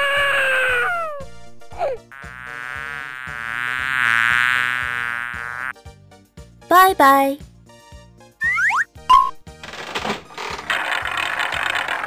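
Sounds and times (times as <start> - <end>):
falling cartoon wail: 0.0 - 1.2
buzzing insect sound effect: 2.1 - 5.7.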